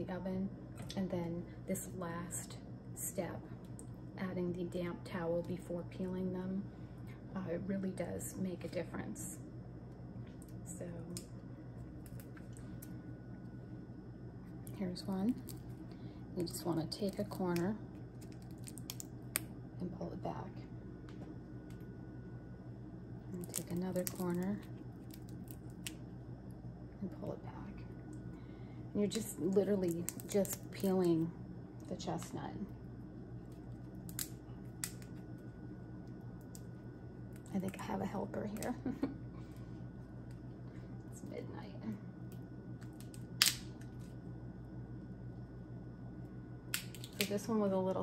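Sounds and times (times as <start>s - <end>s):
steady low hum: 0.0s - 48.0s
chestnut shell crackling: 14.6s - 19.6s, 23.2s - 26.2s, 29.1s - 32.3s, 33.3s - 38.8s, 42.8s - 43.9s, 46.7s - 47.4s.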